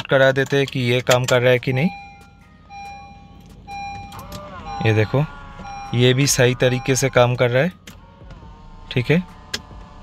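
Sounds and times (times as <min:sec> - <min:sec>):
folding mirror motor whirring: 0:01.9 - 0:10.0.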